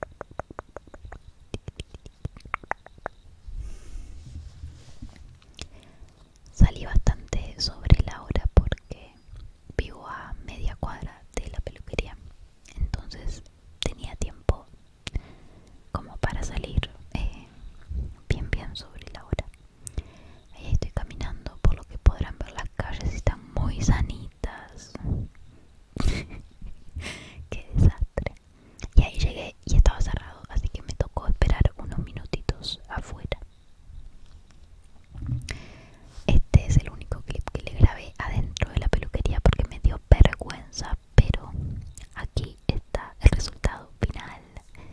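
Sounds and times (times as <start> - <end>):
woman whispering: 1.5 - 2.5, 6.5 - 15.2, 15.9 - 17.6, 18.2 - 19.6, 20.5 - 25.4, 27.4 - 33.5, 36.2 - 44.9.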